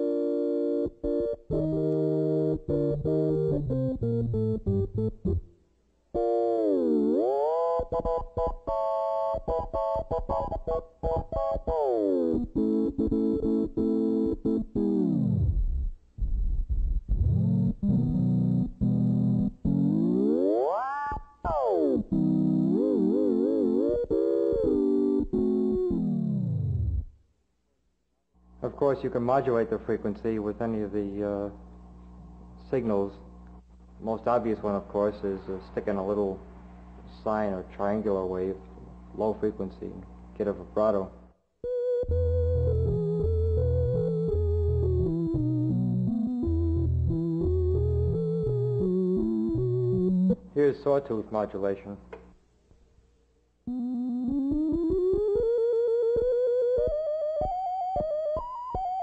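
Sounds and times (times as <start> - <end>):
synthesizer tones with pitch glides: 17.1 - 27.1, 41.8 - 50.4.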